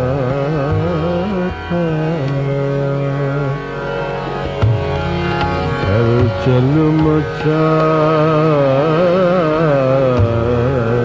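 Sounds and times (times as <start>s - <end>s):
man singing a wordless vowel: 0.0s - 3.6s, 5.6s - 11.0s
steady drone: 0.0s - 11.0s.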